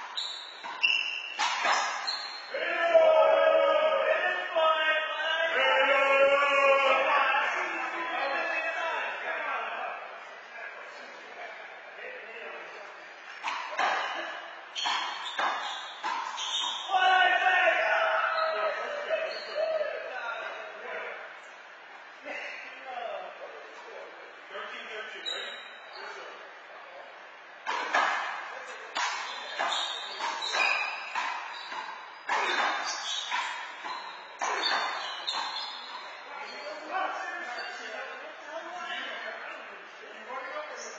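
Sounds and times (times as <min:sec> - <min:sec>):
voices: 0:00.0 - 0:40.9
handball hits echoing: 0:27.6 - 0:36.2.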